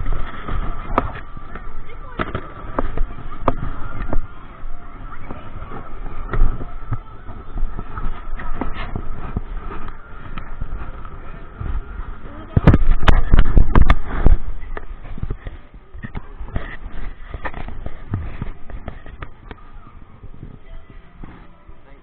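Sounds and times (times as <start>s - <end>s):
knocks and rubbing on camera: 12.6s - 19.4s.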